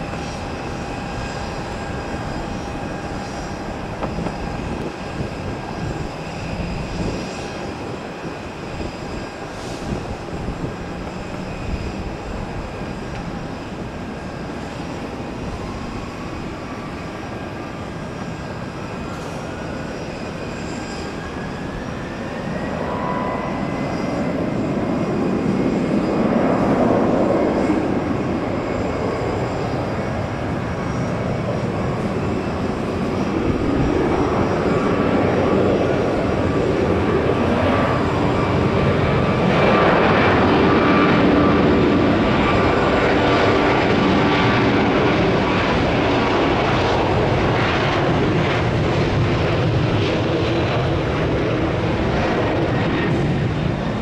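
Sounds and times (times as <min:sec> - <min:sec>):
jet engines rumbling: 0:00.0 - 0:54.0.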